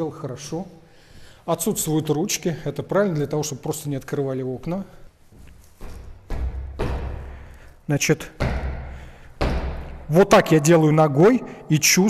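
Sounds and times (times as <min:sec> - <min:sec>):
footsteps on tiled floor: 0:05.0 - 0:07.7.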